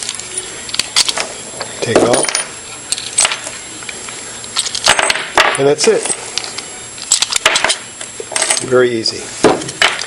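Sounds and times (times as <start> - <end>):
metal lock parts clicking: 0.0 - 3.5, 4.5 - 8.7.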